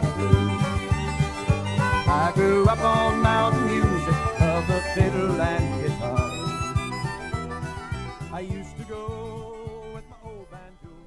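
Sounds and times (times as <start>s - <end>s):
bass: 0.0s - 11.0s
strummed acoustic guitar: 0.0s - 11.0s.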